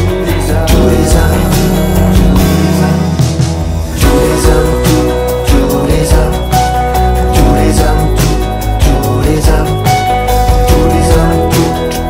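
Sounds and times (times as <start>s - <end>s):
electric bass: 0.0s - 12.0s
sustained guitar chords: 0.0s - 12.0s
drum hits: 0.7s - 6.8s.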